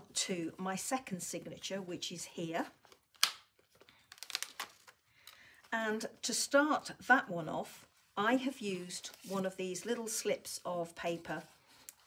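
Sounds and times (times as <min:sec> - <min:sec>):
paper rustling and crinkling: 0:02.8 - 0:05.8, 0:08.4 - 0:10.3.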